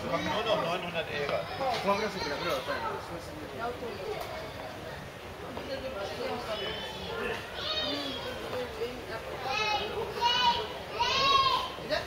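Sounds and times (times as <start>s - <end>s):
crowd chatter: 0.0s - 12.0s
child's high-pitched call: 9.5s - 11.8s.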